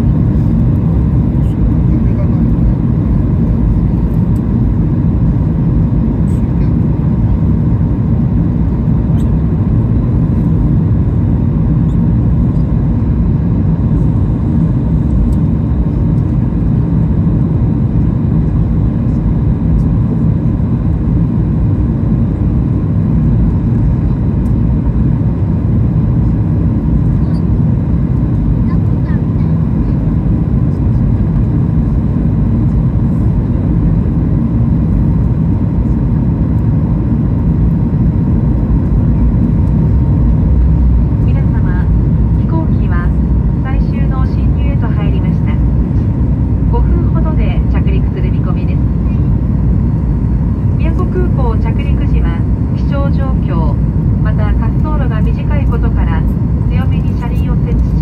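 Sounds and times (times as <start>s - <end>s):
airliner engine rumble: 0.0s - 58.0s.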